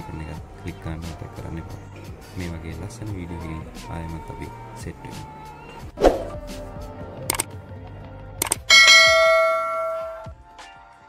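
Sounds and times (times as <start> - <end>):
quick clicks: 8.4 - 8.7
bell-like chime: 8.7 - 10.3.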